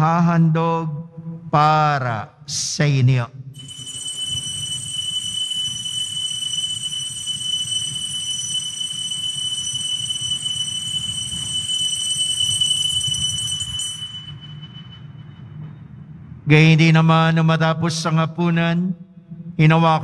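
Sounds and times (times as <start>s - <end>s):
bell ringing: 3.6s - 15.9s.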